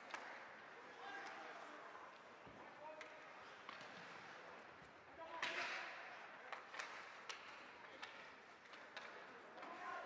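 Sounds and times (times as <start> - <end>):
hockey sticks and skates on ice: 2.1 - 4.8, 5.4 - 10.0.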